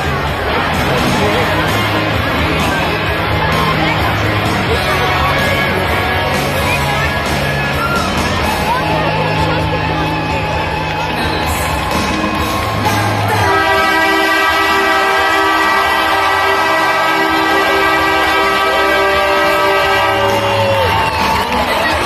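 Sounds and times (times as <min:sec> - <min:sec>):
crowd cheering: 0:00.0 - 0:22.0
arena horn blast: 0:13.1 - 0:21.6.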